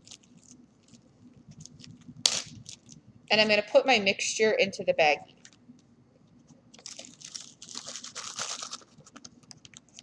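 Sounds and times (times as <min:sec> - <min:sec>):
plastic bag crinkling: 0:00.0 - 0:03.0, 0:06.7 - 0:10.0.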